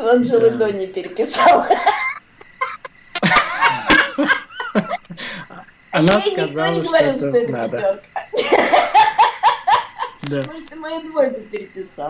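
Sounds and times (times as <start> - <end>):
person laughing heartily: 1.4 - 5.7, 7.7 - 10.2.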